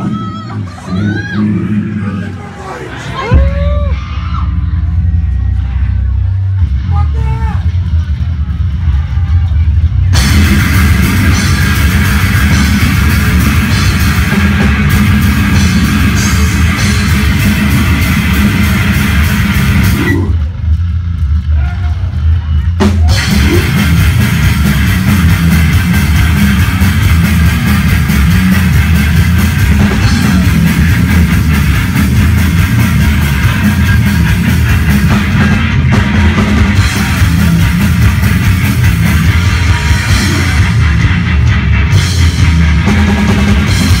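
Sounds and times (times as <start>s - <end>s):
death metal band playing: 0.0s - 44.0s
low heavy rumble: 0.0s - 44.0s.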